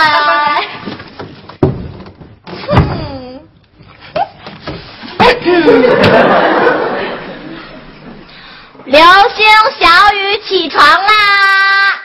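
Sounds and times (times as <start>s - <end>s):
girl singing a call: 0.0s - 0.8s, 8.9s - 12.0s.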